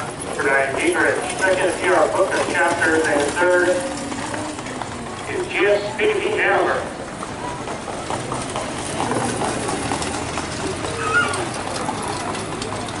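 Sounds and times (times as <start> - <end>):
horses' hooves trotting: 0.0 - 13.0
spectators talking: 0.0 - 13.0.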